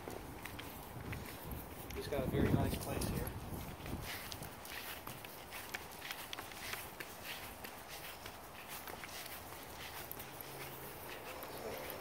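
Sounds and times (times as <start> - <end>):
distant traffic hum: 0.0 - 12.0
footsteps on dry grass: 0.0 - 12.0.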